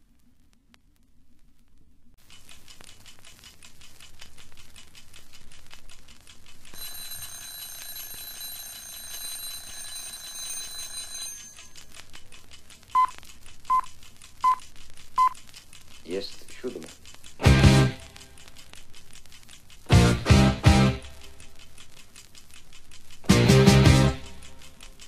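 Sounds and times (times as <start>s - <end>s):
vinyl surface crackle: 0.0s - 25.0s
high ringing tone: 6.8s - 11.8s.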